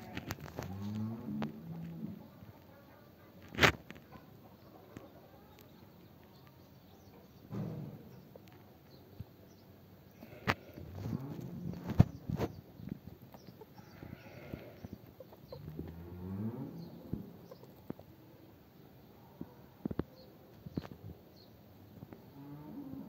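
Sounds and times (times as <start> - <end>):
farm animals calling: 0.0 - 7.4, 10.1 - 12.6, 13.4 - 17.9.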